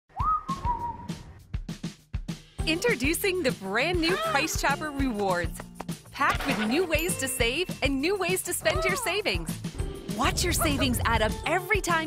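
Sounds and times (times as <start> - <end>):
drum beats: 0.1 - 12.0.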